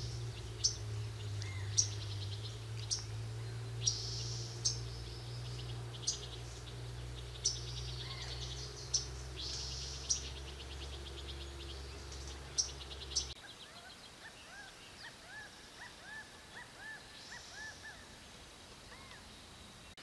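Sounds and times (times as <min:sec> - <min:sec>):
steady low hum: 0:00.0 - 0:13.4
birds trilling: 0:00.0 - 0:19.3.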